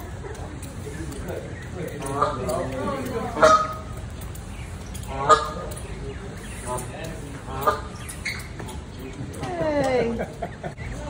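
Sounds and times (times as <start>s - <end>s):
geese honking: 0.9s - 8.6s.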